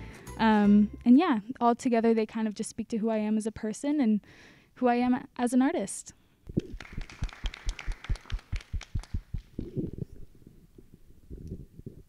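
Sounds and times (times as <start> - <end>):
group of people clapping: 6.6 - 9.8.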